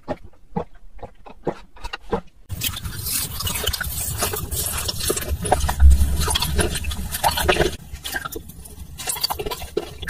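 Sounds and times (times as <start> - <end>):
wet mouth eating sounds: 0.0 - 10.0.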